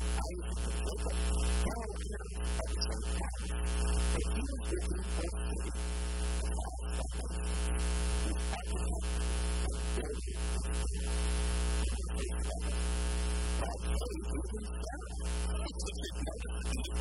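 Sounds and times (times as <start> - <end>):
electrical mains hum: 0.0 - 17.0.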